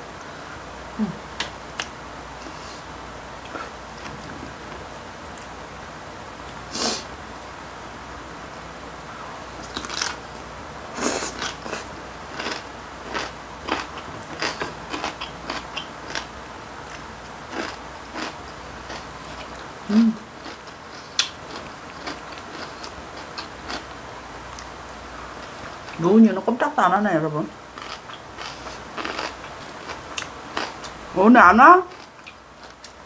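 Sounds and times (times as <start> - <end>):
person humming: 1.0 - 1.3, 19.9 - 20.3
crunching and wet chewing: 9.6 - 10.3, 11.0 - 24.7, 27.7 - 31.0, 31.9 - 33.0.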